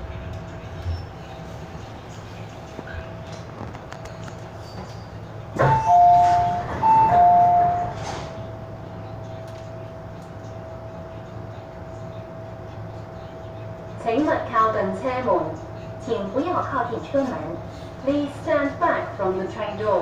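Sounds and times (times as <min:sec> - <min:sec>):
train interior noise: 0:00.0 - 0:20.0.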